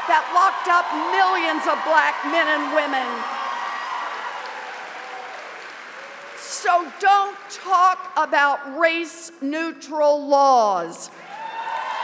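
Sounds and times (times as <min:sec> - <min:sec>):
crowd applauding: 0:00.0 - 0:07.7, 0:11.2 - 0:12.0.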